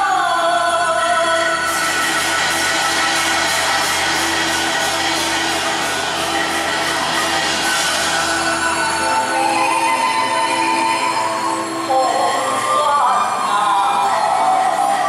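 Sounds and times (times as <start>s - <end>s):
fast percussion beat: 1.6s - 9.8s.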